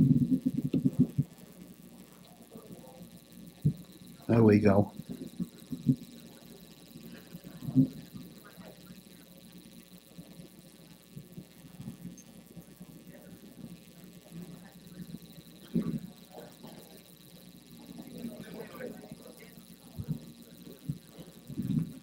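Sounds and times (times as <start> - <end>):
faint steady hum: 0.0 - 22.0
faint indistinct voices: 2.0 - 4.3, 12.3 - 22.0.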